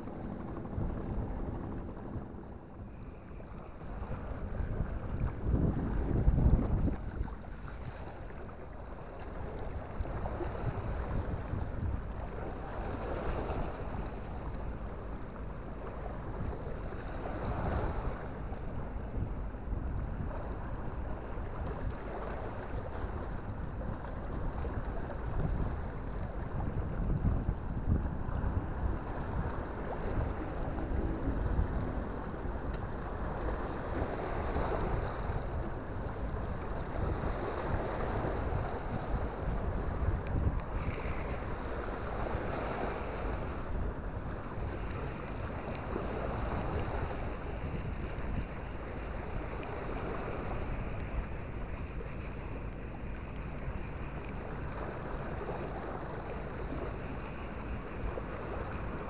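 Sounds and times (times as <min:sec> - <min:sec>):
wind buffeting microphone: 0:00.0 - 0:59.0.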